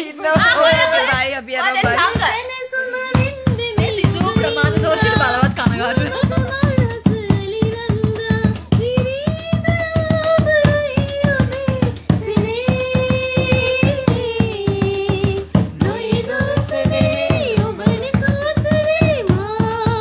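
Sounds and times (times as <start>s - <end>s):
hand-drum beat: 0.2s - 20.0s.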